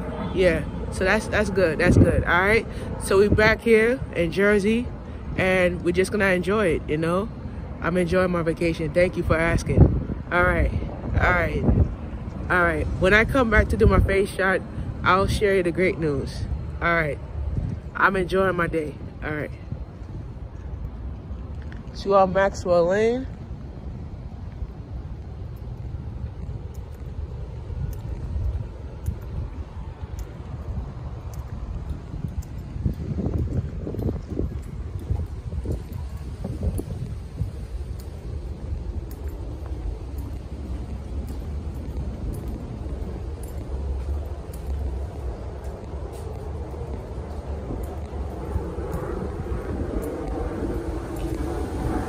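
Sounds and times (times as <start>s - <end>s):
traffic rumble: 0.0s - 52.0s
wind on microphone: 0.0s - 52.0s.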